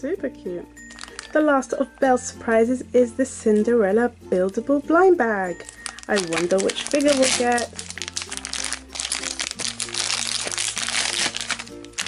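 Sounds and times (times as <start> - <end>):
plastic foil packet crinkling: 0.9 - 1.5, 5.5 - 12.0.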